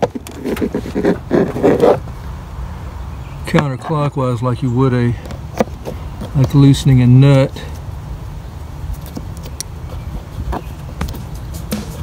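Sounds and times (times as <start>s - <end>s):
plastic clip scraping: 0.0s - 2.0s.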